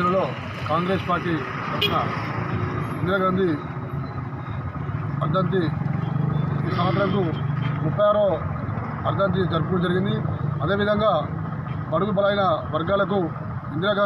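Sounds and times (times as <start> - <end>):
man speaking: 6.6 - 8.4.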